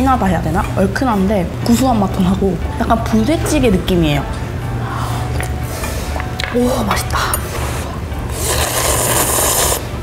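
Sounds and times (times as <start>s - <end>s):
person slurping noodles: 8.3s - 9.9s.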